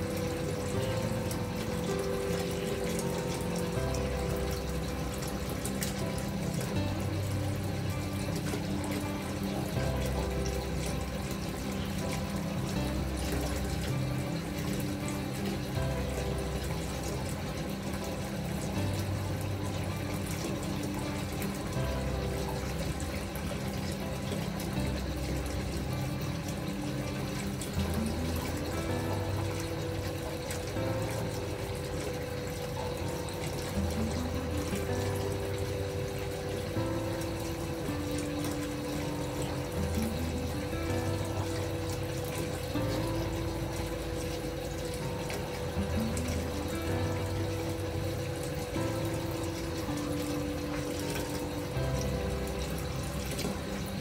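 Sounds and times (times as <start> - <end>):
gentle calm music: 0.0 - 54.0
water pouring into bathtub: 0.0 - 54.0.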